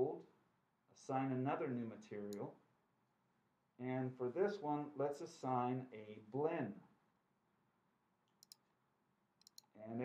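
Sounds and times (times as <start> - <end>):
computer mouse clicks: 8.3 - 8.6, 9.4 - 9.7.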